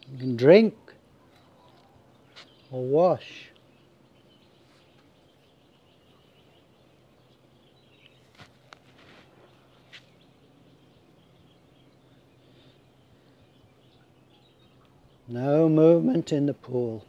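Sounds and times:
faint bird chirps: 0.0 - 17.0.

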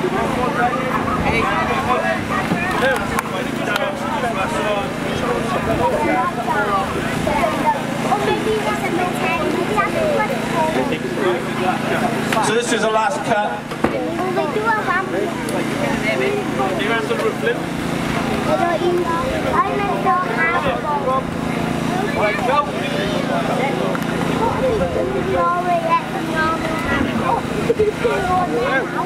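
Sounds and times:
people's voices: 0.0 - 29.0
power pack engine running: 0.0 - 29.0.

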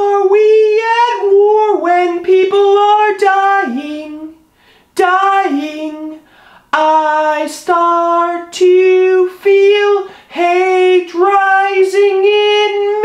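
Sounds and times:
man singing unaccompanied: 0.0 - 13.0
singer breathing: 4.4 - 5.0, 6.2 - 6.7, 10.0 - 10.4.

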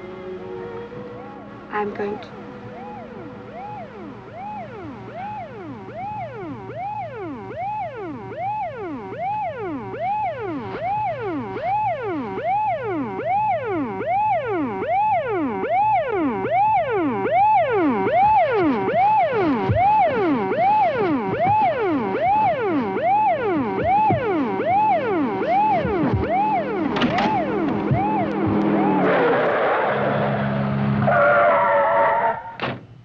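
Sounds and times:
police siren wailing: 0.0 - 32.6.

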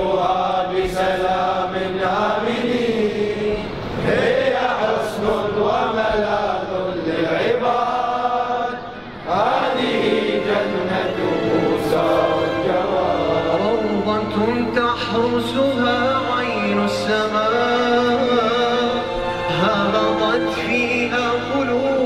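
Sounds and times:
devotional chanting: 0.0 - 22.0.

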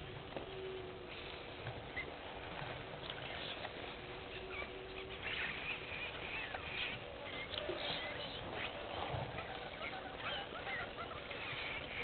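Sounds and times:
small birds chirping: 0.0 - 12.0
steady outdoor hiss: 0.0 - 12.0.

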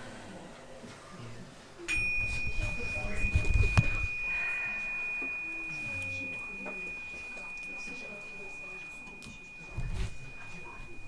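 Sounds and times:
hand bell ringing: 1.9 - 11.0.

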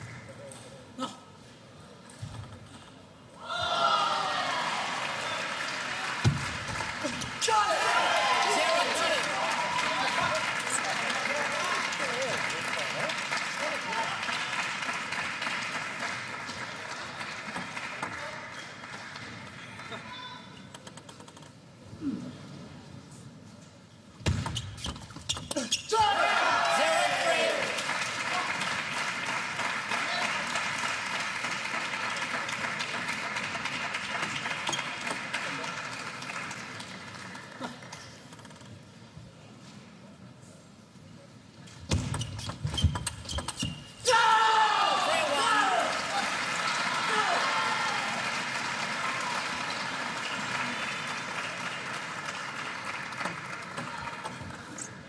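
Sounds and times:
crowd cheering and shouting: 3.4 - 5.4, 7.0 - 10.4, 25.9 - 27.8, 44.0 - 48.3.

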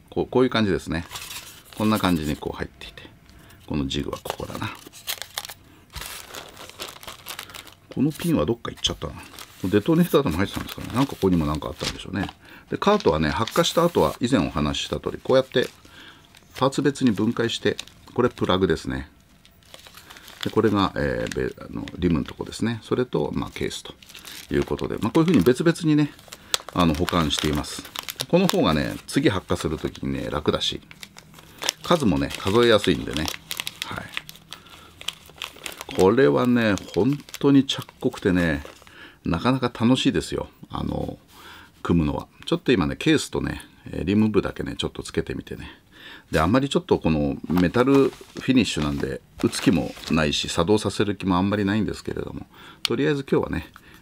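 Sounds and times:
plastic bag crinkling: 1.0 - 2.6, 3.3 - 39.0, 47.4 - 50.9.

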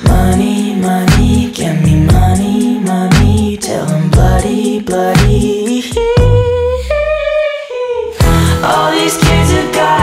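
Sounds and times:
drums: 0.0 - 6.9, 8.2 - 10.0.

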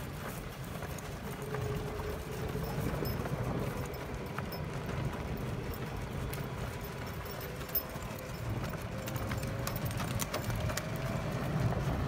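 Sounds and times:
horse hoofbeats on dirt: 0.0 - 12.0
vehicle running noise: 0.0 - 12.0.

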